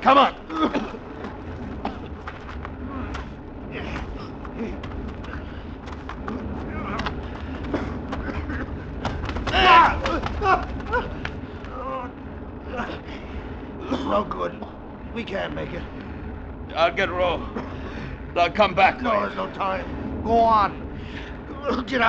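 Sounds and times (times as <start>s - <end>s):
fire rumbling and crackling: 0.0s - 22.0s
man straining and groaning: 6.2s - 13.2s.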